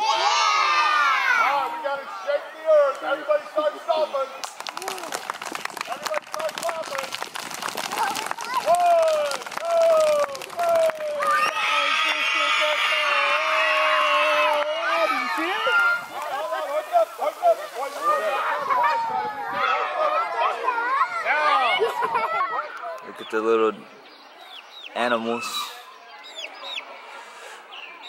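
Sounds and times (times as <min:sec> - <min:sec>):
children screaming: 0:00.0 - 0:02.4, 0:07.9 - 0:23.2
children chattering excitedly: 0:00.0 - 0:28.0
children stomping and clapping: 0:04.4 - 0:11.6.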